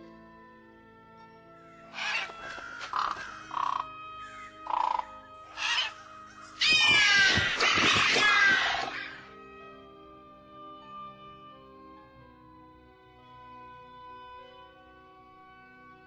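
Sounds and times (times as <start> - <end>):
background music: 0.0 - 16.0
harsh creature calls: 2.0 - 3.9, 4.6 - 6.0, 6.6 - 9.2.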